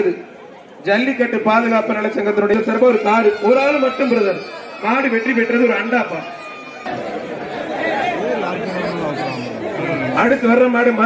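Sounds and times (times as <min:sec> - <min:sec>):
crowd talking and calling out: 0:00.0 - 0:11.0.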